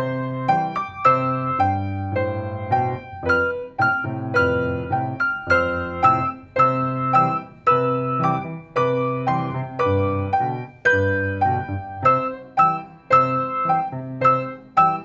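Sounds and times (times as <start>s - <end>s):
piano chords: 0.0s - 15.0s.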